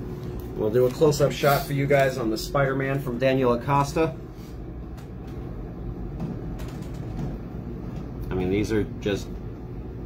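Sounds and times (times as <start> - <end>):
air fryer fan humming: 0.0 - 10.0.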